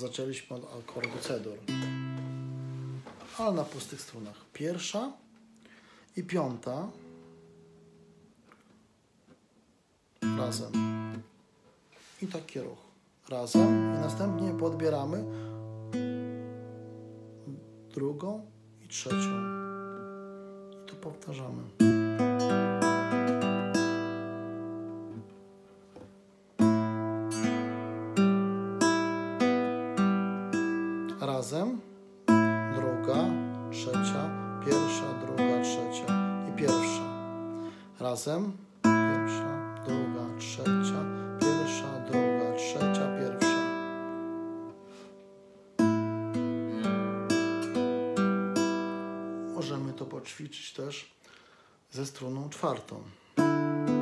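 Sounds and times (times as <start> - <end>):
nylon-string guitar finger-picked: 0.0 - 9.4, 10.2 - 50.4, 52.2 - 54.0.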